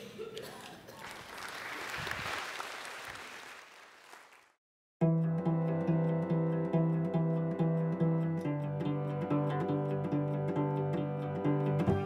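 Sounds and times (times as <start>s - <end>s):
audience applause: 0.9s - 4.6s.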